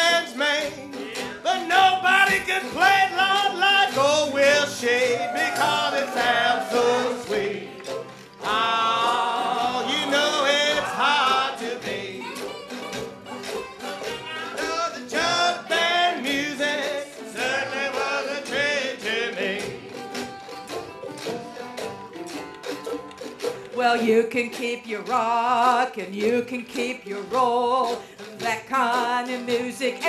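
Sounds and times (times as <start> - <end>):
jug band playing: 0.0 - 30.0.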